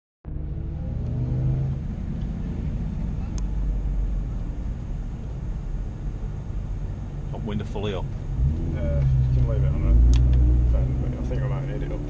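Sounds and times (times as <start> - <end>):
car engine low rumble: 0.2 - 12.0.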